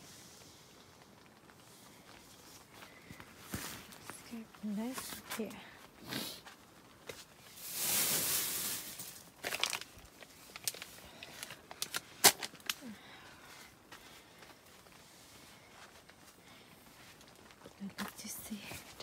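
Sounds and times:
nylon fabric rustling and crinkling: 0.0s - 19.0s.

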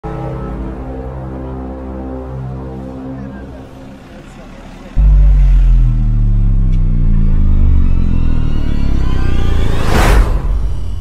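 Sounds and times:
loud deep droning hum: 5.0s - 11.0s.

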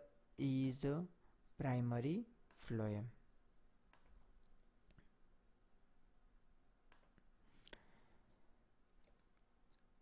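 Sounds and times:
computer mouse clicks: 6.9s - 7.2s, 9.0s - 9.5s.

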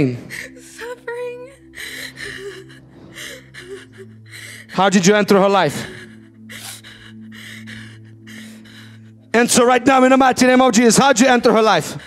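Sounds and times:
woman gasping and crying: 0.0s - 9.3s
soft background music: 0.0s - 12.0s.

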